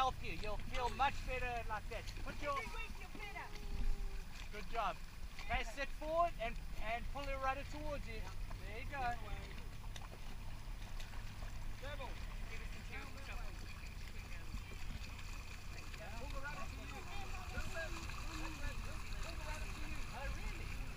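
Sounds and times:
distant voices calling out: 0.0s - 20.9s
low rumble of wind and water: 0.0s - 20.9s.

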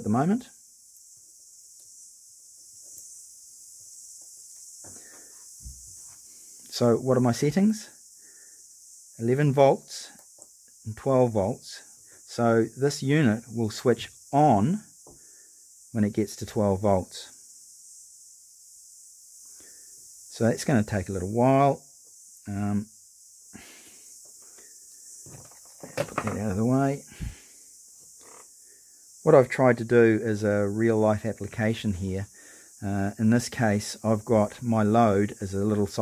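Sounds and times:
steady high hiss: 0.0s - 36.0s
rustling of wire connectors: 25.2s - 27.2s.

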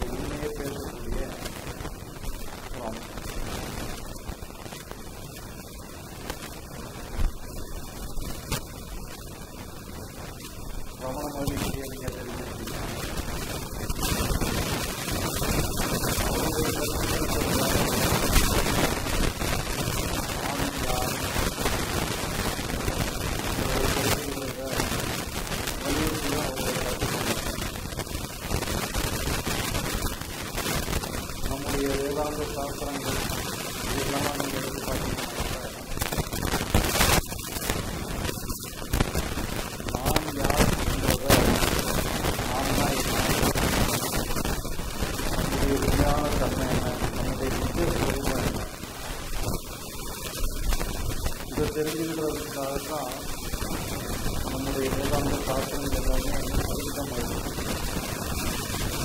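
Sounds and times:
man talking: 0.0s - 1.6s, 2.7s - 3.3s, 11.0s - 13.0s, 16.2s - 18.4s, 20.2s - 21.4s, 23.6s - 25.0s, 25.8s - 27.4s, 31.4s - 36.0s, 39.9s - 41.7s, 42.4s - 43.5s, 45.4s - 48.8s, 51.5s - 53.3s, 54.4s - 57.4s
man's voice through microphone: 0.0s - 4.2s, 10.5s - 27.6s, 31.4s - 36.2s, 39.8s - 44.5s, 45.1s - 49.6s, 51.5s - 57.6s
loud crackling static: 0.0s - 59.0s
loud steady hiss: 0.0s - 59.0s.

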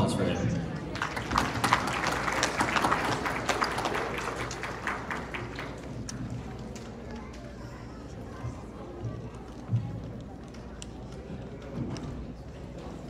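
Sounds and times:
audience applauding: 0.7s - 6.8s.

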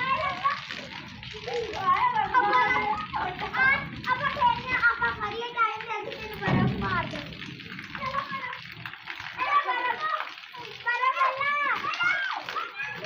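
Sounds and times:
children shouting: 0.0s - 7.3s, 7.9s - 13.0s.

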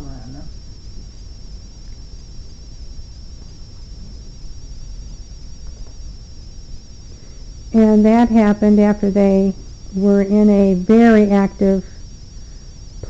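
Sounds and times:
high-pitched whine: 0.0s - 13.0s
low steady rumble: 0.0s - 13.0s.

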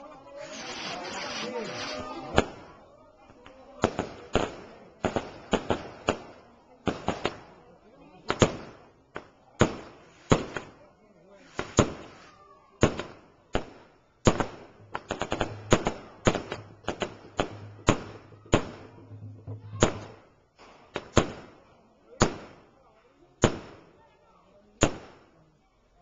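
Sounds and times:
fireworks bangs: 0.4s - 2.8s, 3.8s - 7.6s, 8.2s - 10.8s, 11.4s - 22.7s, 23.4s - 24.0s
cluster of firework cracks: 0.5s - 2.7s, 3.8s - 7.6s, 8.2s - 10.8s, 11.4s - 21.6s, 22.2s - 22.7s, 23.4s - 24.0s, 24.8s - 25.3s.

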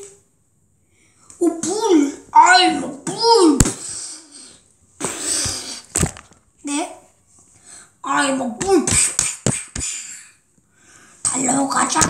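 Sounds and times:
child's wordless voice: 1.4s - 4.4s, 6.6s - 7.2s, 8.0s - 10.4s, 11.2s - 12.0s.

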